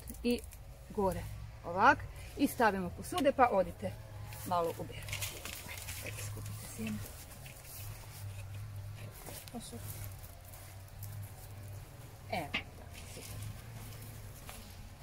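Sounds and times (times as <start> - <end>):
dry seed heads rustling: 0.0 - 15.0.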